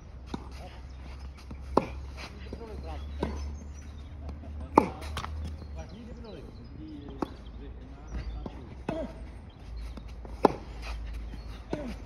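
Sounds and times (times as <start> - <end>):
tennis ball impact: 4.6 - 5.6, 10.2 - 10.8.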